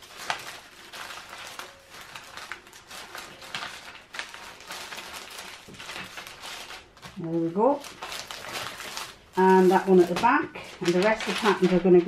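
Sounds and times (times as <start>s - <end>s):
paper and plastic bag rustling: 0.0s - 12.0s.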